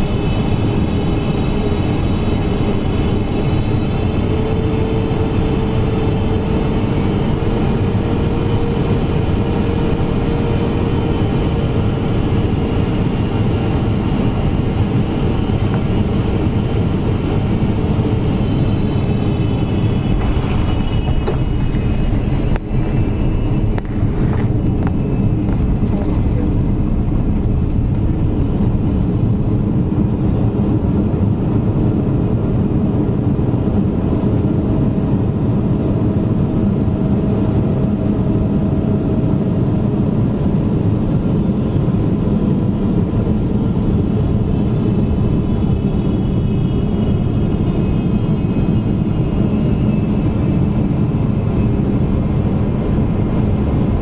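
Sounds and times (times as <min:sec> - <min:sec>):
airplane cabin engine rumble: 0:00.0 - 0:54.0.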